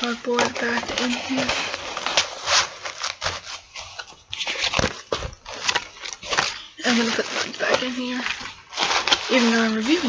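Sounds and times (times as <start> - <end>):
cardboard and fabric rustling: 0.0 - 10.0.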